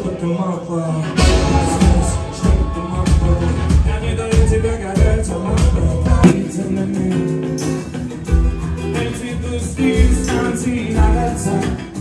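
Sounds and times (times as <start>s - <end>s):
lead vocal singing: 0.0s - 12.0s
live rock band playing: 0.0s - 12.0s
drum hits: 1.2s - 6.5s.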